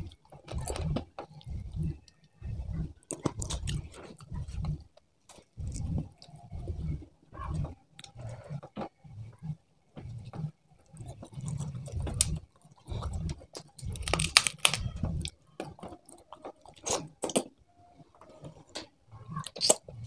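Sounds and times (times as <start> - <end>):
chewing and crunching: 0.0 - 9.0, 10.0 - 17.6, 18.2 - 20.0.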